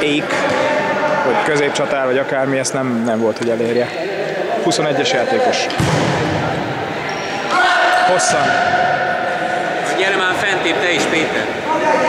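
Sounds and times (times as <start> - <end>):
voices in sports hall: 0.0 - 12.0
ball bouncing on court floor: 5.7 - 6.6.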